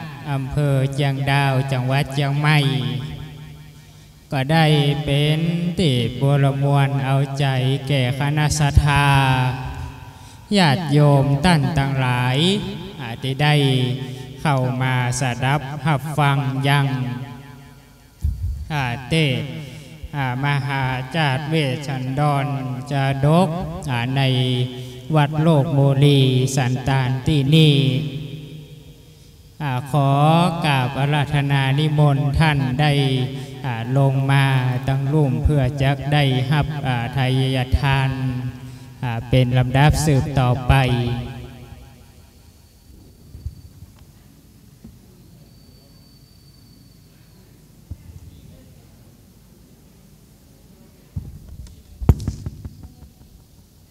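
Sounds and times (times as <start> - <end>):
man chanting: 0.0 - 17.8, 18.6 - 29.0, 29.6 - 42.0.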